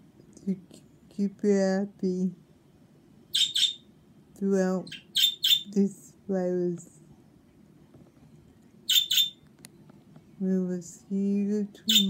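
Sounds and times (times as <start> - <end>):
low room hum: 0.0 - 12.0
budgerigar chirping: 3.3 - 3.9, 4.8 - 5.8, 8.9 - 9.4.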